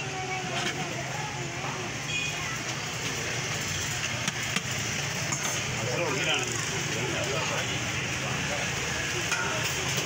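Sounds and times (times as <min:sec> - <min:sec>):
faint voices: 0:00.0 - 0:10.0
low traffic hum: 0:00.0 - 0:10.0.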